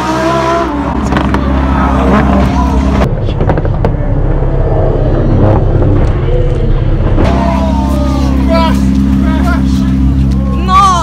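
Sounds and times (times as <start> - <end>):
car engine at high revs: 0.0 - 11.0.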